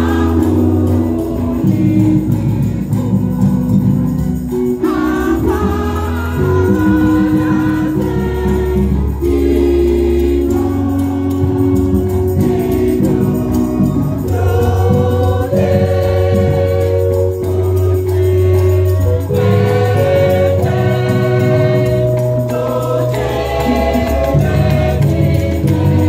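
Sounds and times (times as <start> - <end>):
low bass notes: 0.0 - 26.0
women's choir singing in harmony: 0.0 - 26.0.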